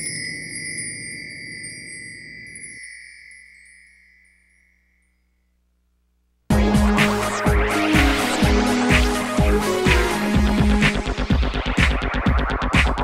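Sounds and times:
bright chime ringing: 0.0s - 5.6s.

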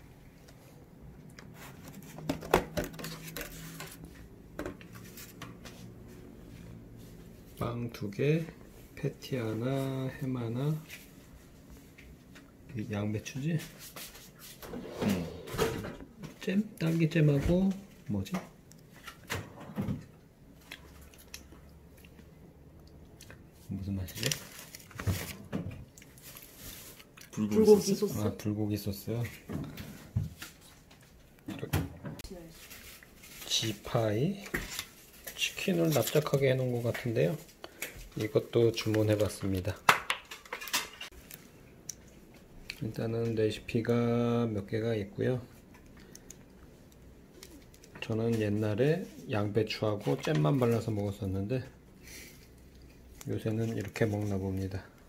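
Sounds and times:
paper rustling: 1.5s - 5.9s.

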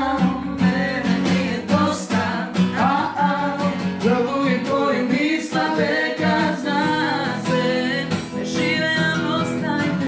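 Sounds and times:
acoustic guitar strumming: 0.0s - 10.0s
woman singing: 0.0s - 10.0s.

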